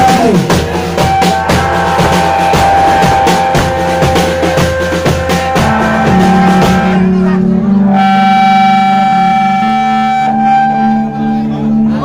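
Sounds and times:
live rock band playing: 0.0 - 12.0
long steady high note: 0.9 - 12.0.

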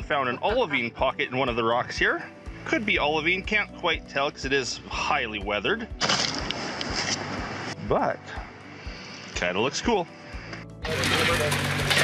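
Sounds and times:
water pump engine running: 10.9 - 12.0.

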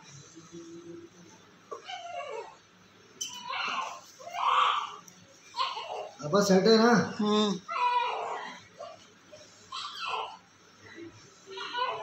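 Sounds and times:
baby whimpering cry: 1.7 - 2.6, 3.4 - 6.2, 7.4 - 10.5, 11.5 - 12.0.

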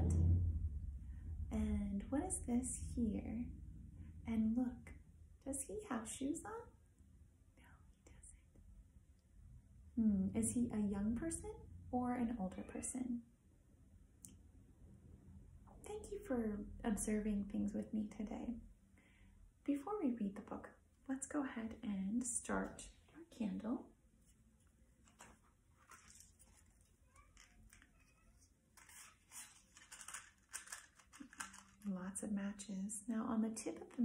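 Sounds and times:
woman asking a question: 1.5 - 3.5, 4.3 - 6.7, 10.0 - 13.2
small objects rustling and clicking: 25.0 - 31.9.

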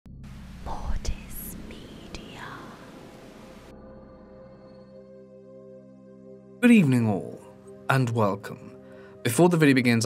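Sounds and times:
static hiss burst: 0.3 - 3.7.

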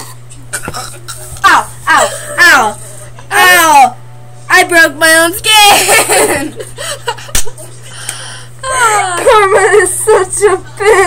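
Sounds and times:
girls laughing: 1.9 - 3.4, 5.6 - 7.9, 8.6 - 11.0.

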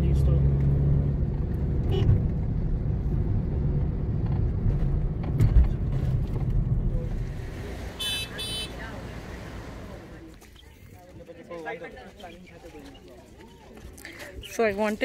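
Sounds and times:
engine and tyre rumble: 0.0 - 10.6.

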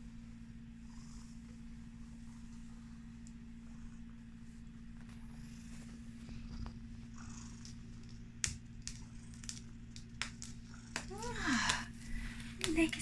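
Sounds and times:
cat purring: 0.0 - 13.0.

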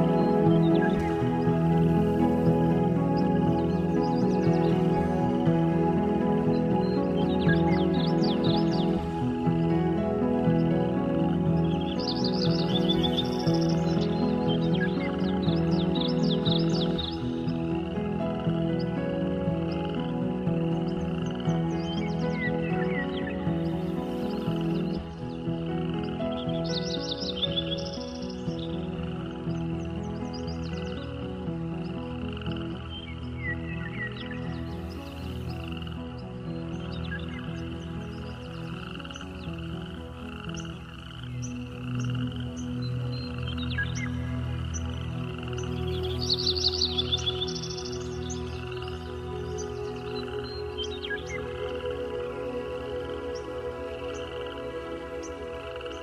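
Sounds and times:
frogs croaking: 0.0 - 56.0
soft relaxing music: 0.0 - 56.0
bird chirps: 10.4 - 19.0, 19.6 - 56.0.

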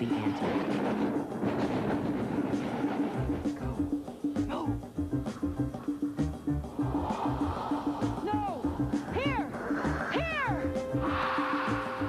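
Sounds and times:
film music with steady beat: 0.0 - 12.0
hiss: 6.7 - 12.0.

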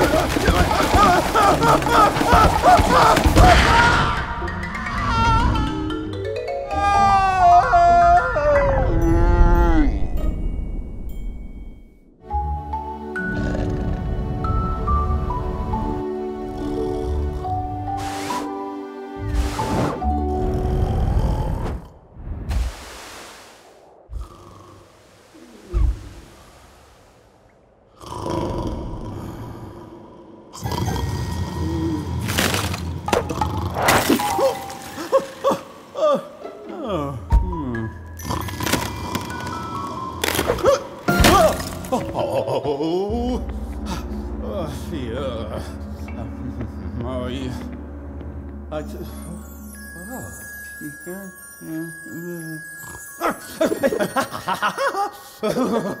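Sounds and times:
ice cracking and breaking: 0.0 - 4.0, 32.2 - 35.5, 38.3 - 42.1.

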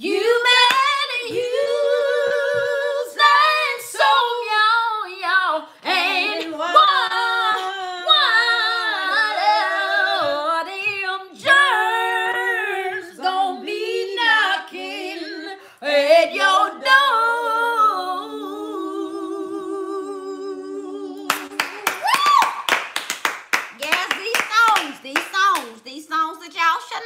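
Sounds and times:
women singing a cappella: 0.0 - 21.8.

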